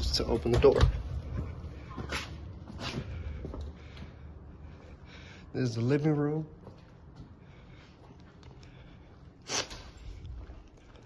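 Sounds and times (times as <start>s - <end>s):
footsteps and scuffing: 0.0s - 4.2s.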